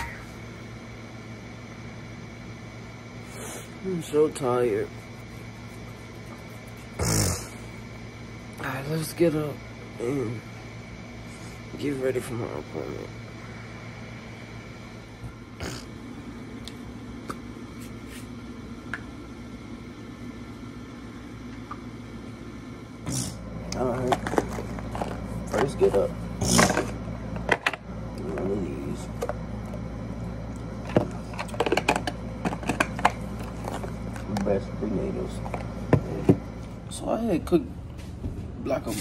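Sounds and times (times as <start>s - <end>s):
low electrical hum: 0.0s - 39.0s.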